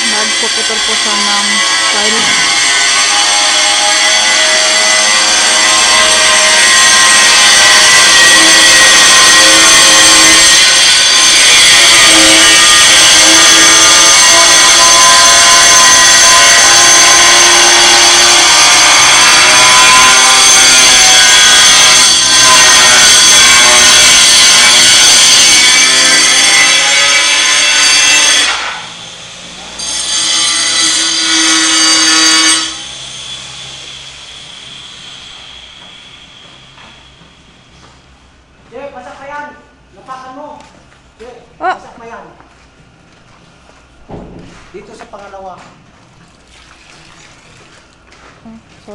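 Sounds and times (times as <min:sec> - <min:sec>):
cut-off saw screeching through metal: 0:00.0 - 0:37.9.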